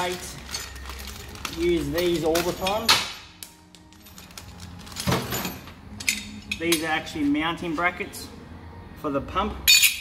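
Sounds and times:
plastic bag rustling: 0.0s - 2.8s.

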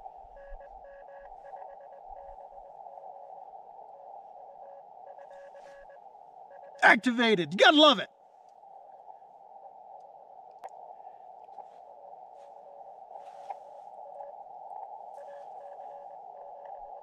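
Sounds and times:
faint morse code tone: 0.0s - 8.0s, 15.1s - 17.0s.

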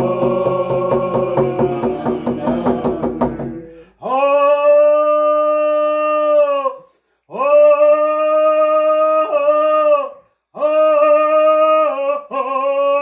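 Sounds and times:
person singing long held notes: 0.0s - 13.0s.

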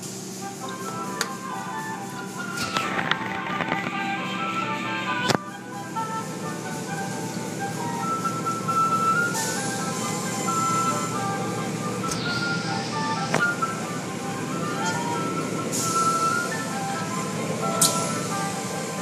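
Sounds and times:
spray hissing: 0.0s - 19.0s
simple melody music: 0.5s - 19.0s
car wash rumble and water: 6.0s - 19.0s.

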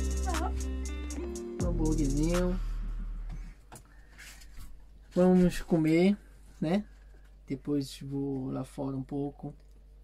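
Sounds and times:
bass of background music: 0.0s - 3.7s.

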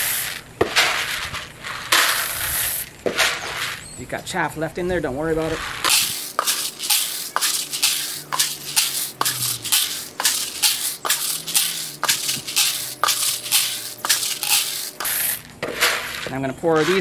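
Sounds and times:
coffee beans rattling in buckets: 0.0s - 4.0s, 4.6s - 17.0s.

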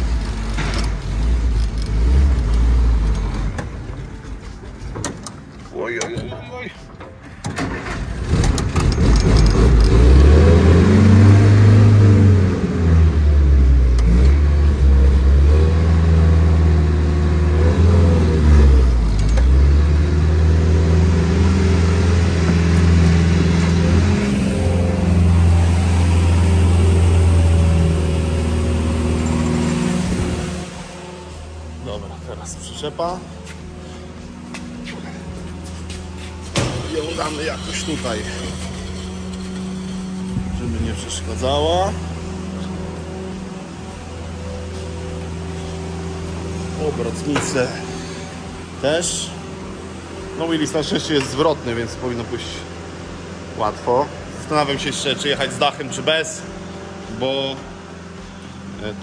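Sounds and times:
jeep engine revving: 0.0s - 3.8s, 7.7s - 59.0s.

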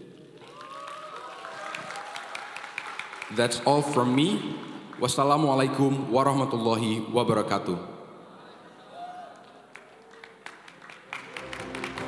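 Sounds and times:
hand clapping: 1.6s - 5.1s, 9.4s - 12.0s.

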